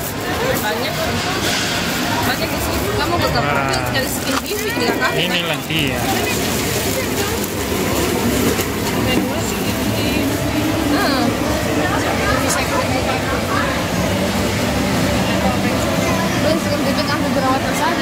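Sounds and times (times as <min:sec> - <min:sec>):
indistinct chatter of voices: 0:00.0 - 0:18.0.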